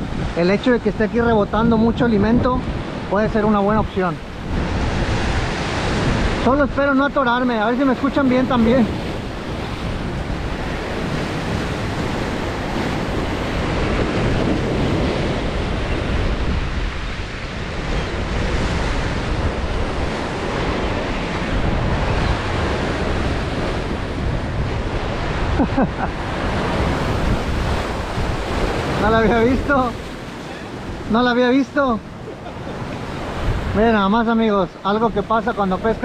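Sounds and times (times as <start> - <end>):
surf breaking over rocks: 0.0 - 36.0
wind buffeting microphone: 0.0 - 36.0.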